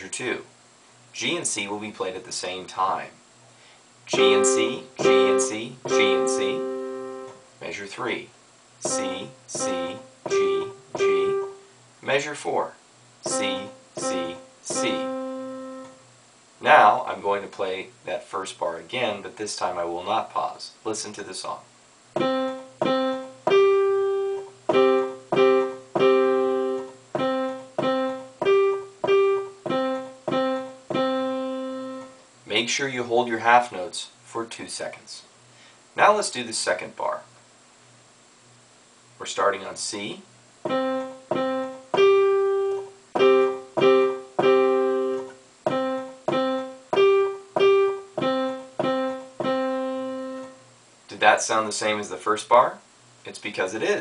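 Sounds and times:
digital piano simple tune: 4.1 - 7.8, 8.8 - 11.7, 13.2 - 16.0, 22.2 - 32.2, 40.6 - 50.7.

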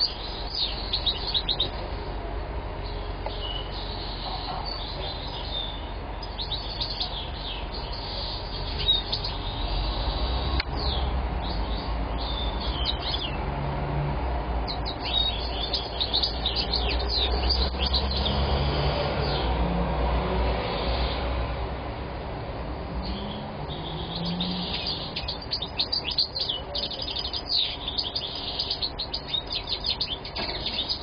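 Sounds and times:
goldfinch twittering song: 0.0 - 1.8, 2.8 - 13.4, 14.6 - 19.5, 23.0 - 31.0.

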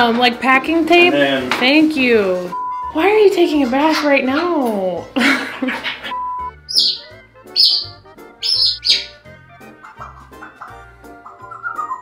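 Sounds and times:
background music: 0.0 - 12.0
bird chirping: 6.6 - 9.3.

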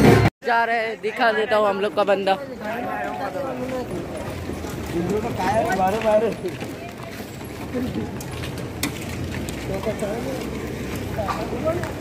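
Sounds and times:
men talking: 1.1 - 6.8, 9.5 - 12.0.

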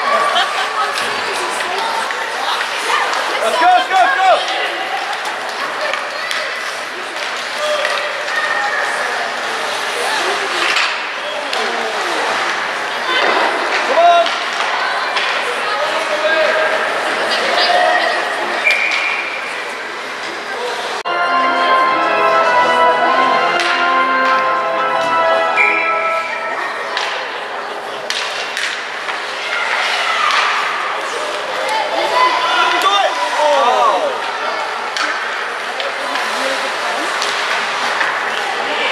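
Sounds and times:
hockey sticks and puck knocking: 28.1 - 30.8.

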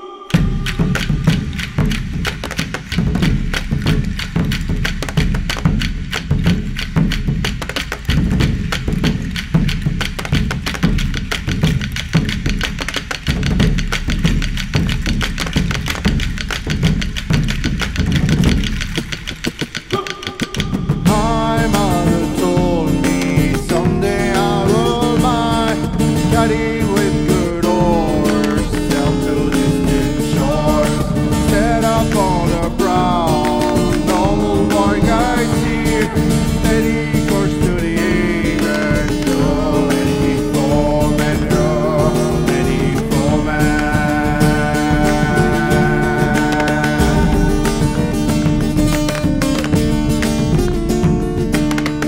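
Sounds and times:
frame drums beaten: 0.0 - 52.0
plucked string instrument melody: 20.9 - 52.0.

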